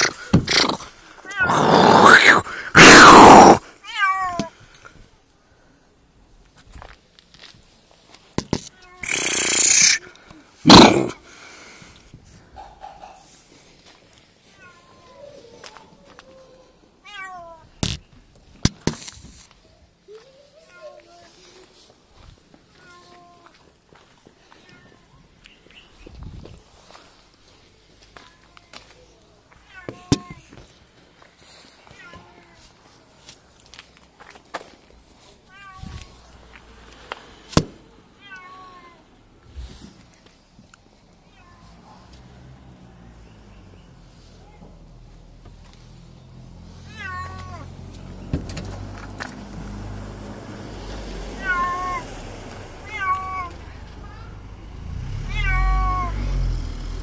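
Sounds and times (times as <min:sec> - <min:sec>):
cat hissing: 0:00.0 - 0:03.7, 0:09.0 - 0:11.2
cat meowing: 0:17.0 - 0:17.7, 0:38.2 - 0:39.0, 0:46.8 - 0:47.7, 0:51.3 - 0:52.1, 0:52.8 - 0:54.3, 0:55.3 - 0:56.2.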